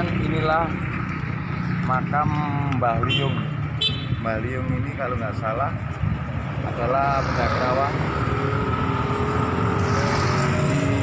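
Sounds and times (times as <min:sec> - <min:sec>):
motorcycle engines: 0:00.0 - 0:11.0.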